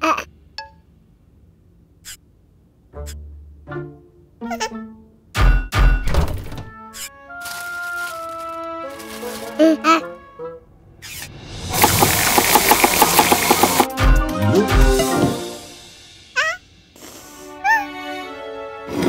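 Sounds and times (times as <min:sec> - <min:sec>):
cartoon background music: 0:02.9 - 0:10.6, 0:11.6 - 0:19.0
noisy rapid pulses: 0:11.7 - 0:13.9.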